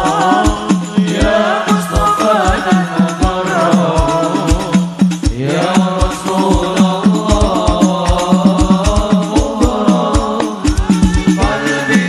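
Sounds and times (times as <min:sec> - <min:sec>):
hand drums beating: 0:00.0 - 0:12.0
person singing ornamented melody: 0:00.0 - 0:12.0.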